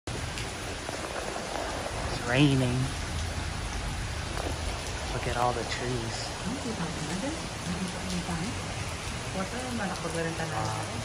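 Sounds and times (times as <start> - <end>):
heavy rain on pool and pavement: 0.1 - 11.0.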